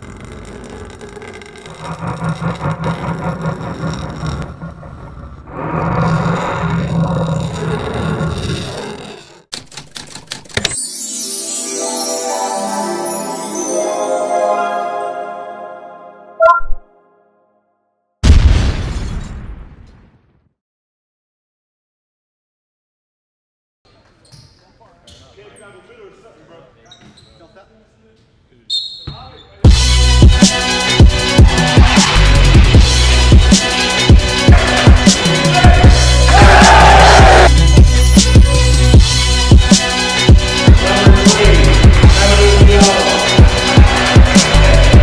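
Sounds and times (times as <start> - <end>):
typewriter clicks: 9.5 - 10.8
music: 10.6 - 18.0, 29.6 - 45.0.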